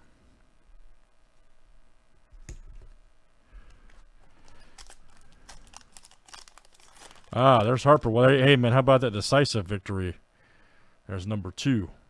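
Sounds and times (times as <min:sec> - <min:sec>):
wrapper tearing and crinkling: 0:04.4 - 0:08.3.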